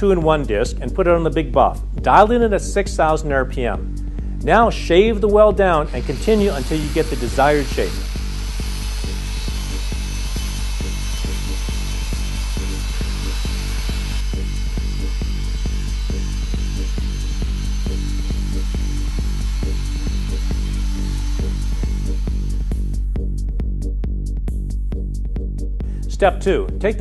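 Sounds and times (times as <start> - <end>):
grinder grinding metal: 5.7 - 23.0
electronic music with steady beat: 7.5 - 25.9.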